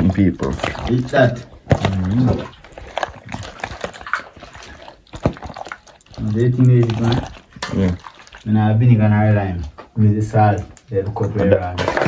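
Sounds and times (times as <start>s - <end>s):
wet squelching of chicken pieces: 0.0s - 9.9s.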